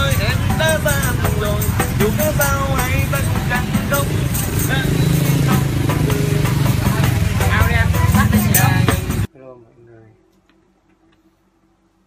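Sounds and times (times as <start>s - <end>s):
man singing: 0.0s - 9.0s
tambourine jingles: 0.0s - 9.3s.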